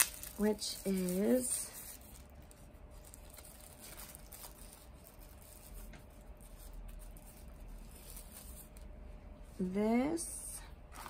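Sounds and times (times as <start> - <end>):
packaging rustling and clicking: 0.0 - 6.0.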